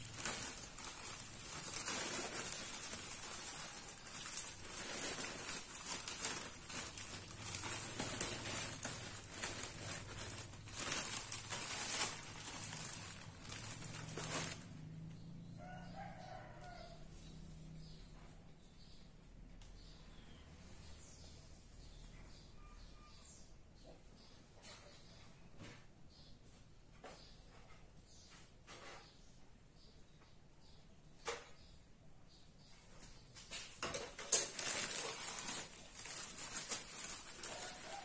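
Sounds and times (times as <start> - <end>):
dry grass rustling in plastic bag: 0.0 - 14.8, 33.5 - 38.0
distant rooster crowing: 15.3 - 17.8, 37.4 - 38.0.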